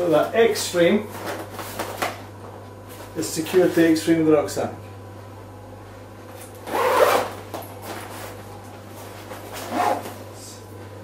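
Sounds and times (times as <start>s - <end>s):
steady low hum: 0.0s - 11.0s
rucksack fabric and straps handled: 9.0s - 10.2s
rasping zip-like rustle: 9.5s - 10.1s.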